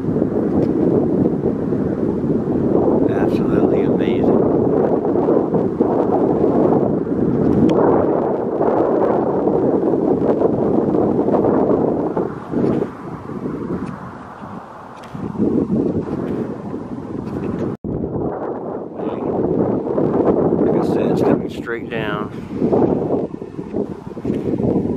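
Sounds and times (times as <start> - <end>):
wind buffeting microphone: 0.0 - 24.9.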